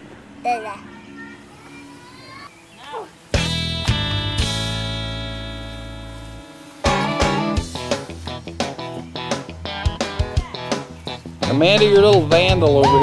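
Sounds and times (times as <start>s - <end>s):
guitar chords and plucked notes: 3.3s - 13.0s.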